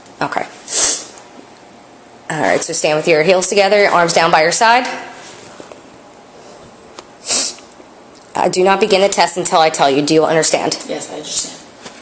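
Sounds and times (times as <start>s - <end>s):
person exhaling sharply: 7.2s - 7.6s.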